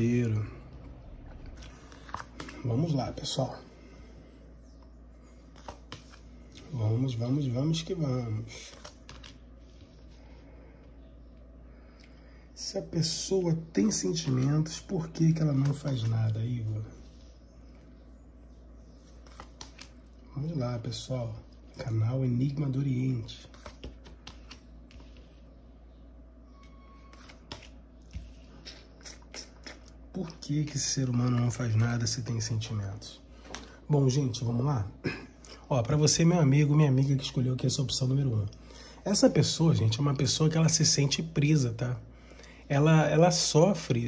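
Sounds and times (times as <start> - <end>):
faint room hum: 0.0 - 44.0.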